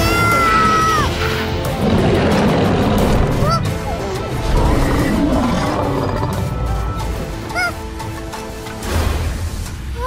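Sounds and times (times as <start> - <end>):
dramatic background music: 0.0 - 10.0
cartoon monster roar: 1.8 - 6.5.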